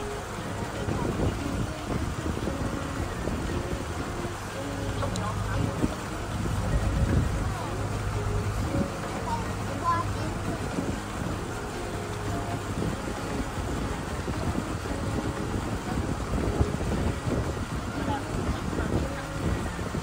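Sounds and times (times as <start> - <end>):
boat engine humming: 0.0 - 20.0
wind buffeting microphone: 0.0 - 20.0.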